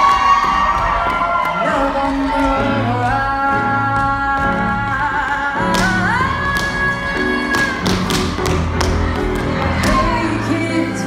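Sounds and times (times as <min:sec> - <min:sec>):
recorded pop song: 0:00.0 - 0:11.0.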